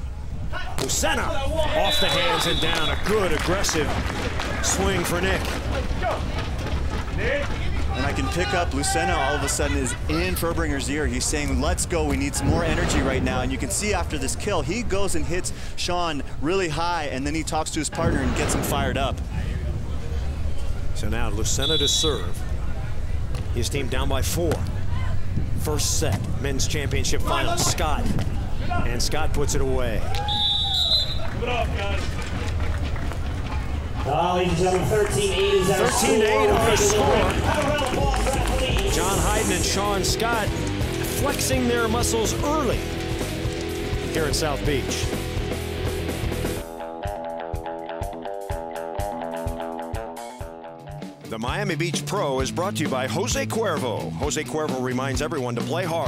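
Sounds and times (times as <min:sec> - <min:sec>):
crowd voices: 0:00.0 - 0:15.5, 0:17.9 - 0:46.3
wind rumble on microphone: 0:18.1 - 0:21.0, 0:24.6 - 0:28.8
people shouting: 0:34.8 - 0:39.5.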